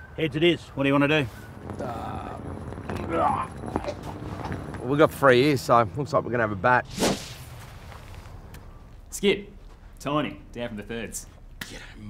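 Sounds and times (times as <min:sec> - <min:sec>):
whip-like whoosh: 0:06.9 - 0:07.6.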